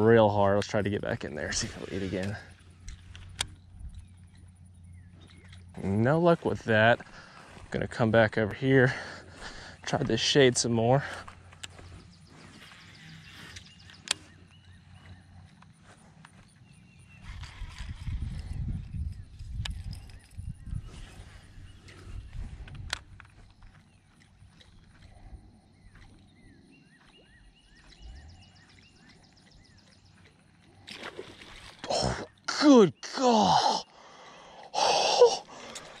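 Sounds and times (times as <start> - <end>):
faint chirping calls: 0.0 - 7.8, 8.8 - 36.0.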